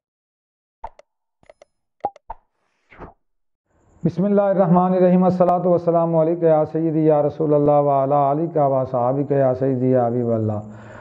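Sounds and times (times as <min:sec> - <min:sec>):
mouse clicks and pops: 0:00.8 - 0:03.1.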